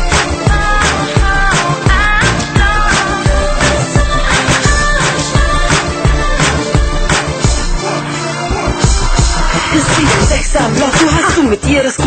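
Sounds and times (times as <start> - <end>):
recorded song with steady beat: 0.0 - 12.0.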